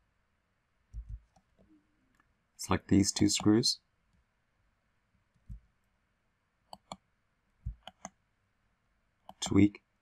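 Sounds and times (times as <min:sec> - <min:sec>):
soft low thumps: 0:01.0 - 0:01.3, 0:07.6 - 0:07.9
computer mouse clicking: 0:01.0 - 0:01.5, 0:06.7 - 0:07.0, 0:07.7 - 0:08.2.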